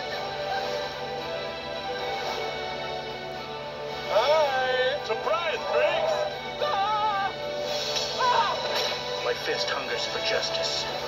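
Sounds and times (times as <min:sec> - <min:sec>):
trailer music from small speaker: 0:00.0 - 0:11.0
high wavering vocal cries: 0:05.6 - 0:07.5.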